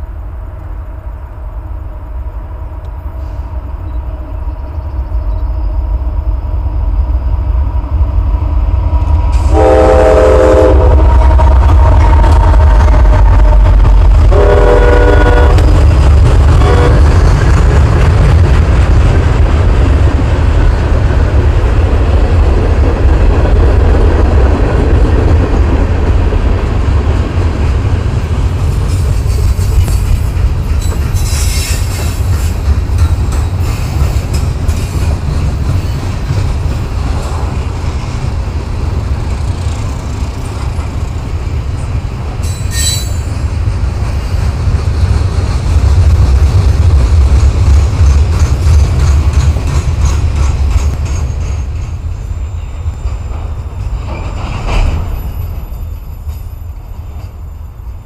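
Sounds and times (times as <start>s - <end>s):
train air horn blasts: 9.3s - 12.0s, 14.3s - 15.8s, 16.5s - 17.2s, 42.5s - 43.3s
freight cars rolling by: 15.6s - 57.4s
train wheel clicks: 28.6s - 38.0s, 39.2s - 57.4s.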